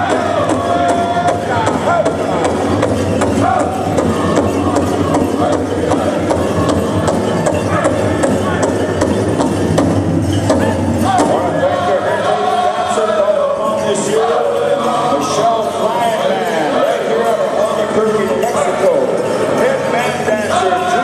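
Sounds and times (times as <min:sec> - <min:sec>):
group singing: 0:00.0 - 0:08.8, 0:10.6 - 0:17.5
big drum steady beat: 0:00.0 - 0:11.8.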